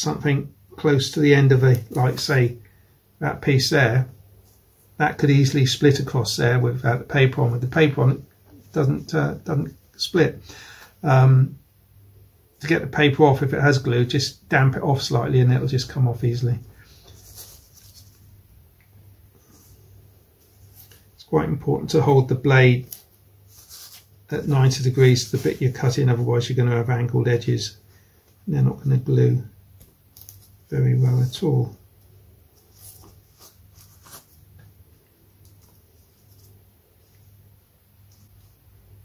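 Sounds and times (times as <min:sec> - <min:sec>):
low steady hum: 0:00.0 - 0:39.0.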